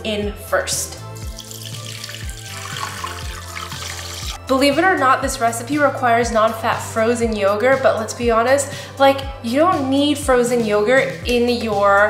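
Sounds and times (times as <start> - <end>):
background music with steady beat: 0.0 - 12.0
juice pouring into blender jar: 1.2 - 4.4.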